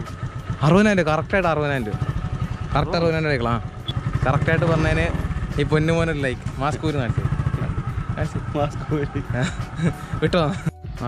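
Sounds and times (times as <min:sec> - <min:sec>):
small motorcycle engine idling: 0:00.0 - 0:10.7.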